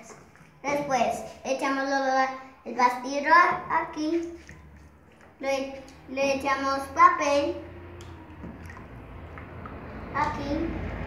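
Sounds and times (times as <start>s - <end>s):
wet paper pulp squelching: 0.0s - 11.0s.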